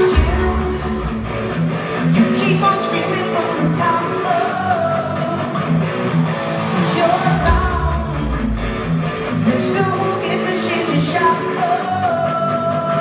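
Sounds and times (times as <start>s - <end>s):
drums: 0.0s - 13.0s
electric guitars: 0.0s - 13.0s
sung lead vocal: 0.0s - 13.0s.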